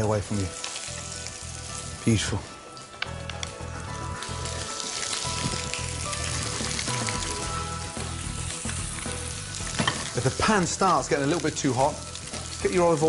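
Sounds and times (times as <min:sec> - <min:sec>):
fish frying in oil: 0:00.0 - 0:02.4, 0:03.3 - 0:13.0.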